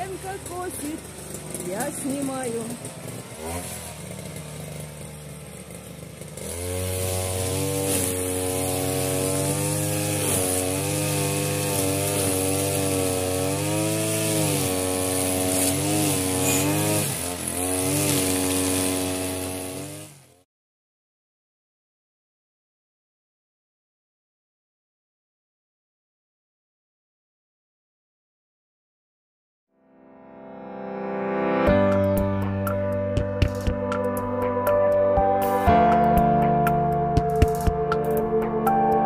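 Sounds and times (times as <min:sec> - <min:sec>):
string trimmer engine: 0:00.0 - 0:20.5, 0:32.7 - 0:39.0.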